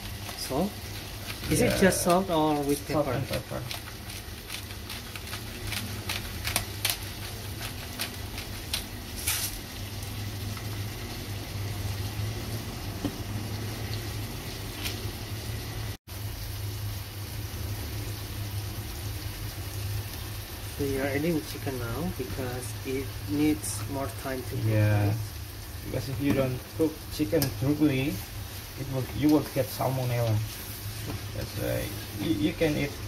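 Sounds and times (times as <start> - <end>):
oil crackling and popping: 0.0 - 11.1, 13.0 - 15.1, 23.3 - 33.0
food sizzling in oil: 0.0 - 33.0.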